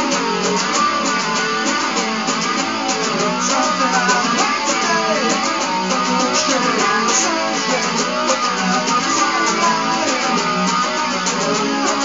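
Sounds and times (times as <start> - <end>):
guitar strumming: 0.0 - 12.0.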